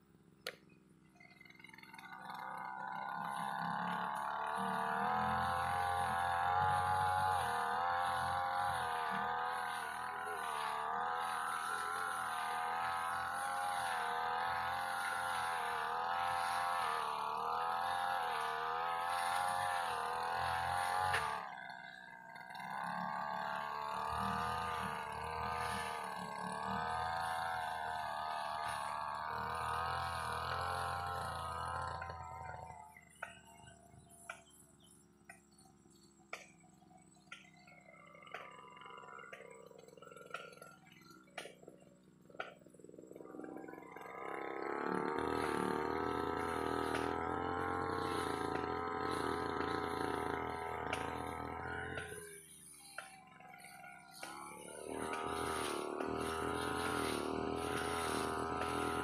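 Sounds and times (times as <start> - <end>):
brush cutter engine running: 0.0 - 59.0.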